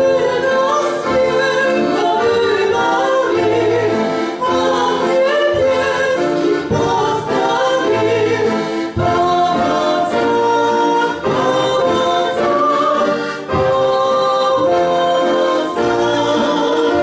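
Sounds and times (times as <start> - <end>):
two women singing: 0.0 - 17.0.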